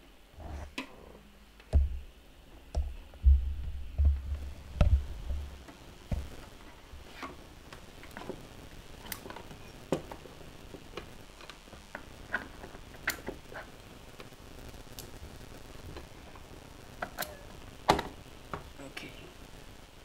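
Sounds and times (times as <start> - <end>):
dull low bumps: 2.8 - 7.1.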